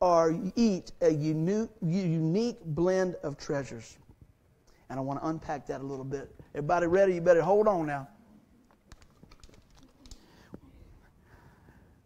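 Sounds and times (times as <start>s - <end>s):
faint whisper-like murmur: 9.4s - 12.0s.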